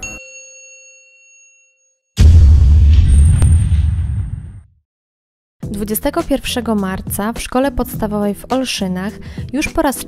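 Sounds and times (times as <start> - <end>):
bell-like ding: 0.0 - 2.1.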